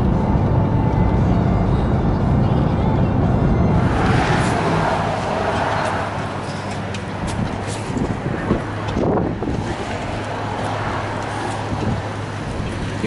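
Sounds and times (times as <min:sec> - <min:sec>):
traffic and engine hum: 0:00.0 - 0:13.0
wind rumbling on microphone: 0:00.0 - 0:13.0.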